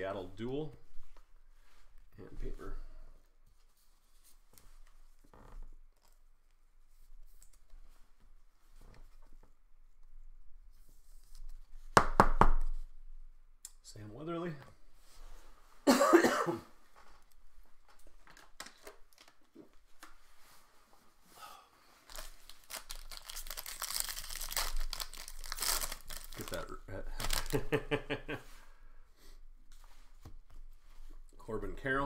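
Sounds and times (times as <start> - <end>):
person coughing: 15.9 - 16.7
foil wrapper crinkling and tearing: 22.0 - 27.8.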